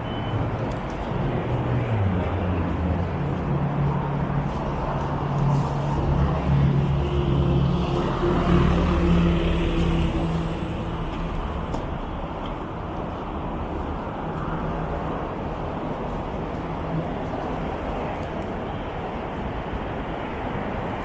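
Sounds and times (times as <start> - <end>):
tyre and road noise: 0.0 - 21.0
heavy truck engine passing: 0.3 - 17.0.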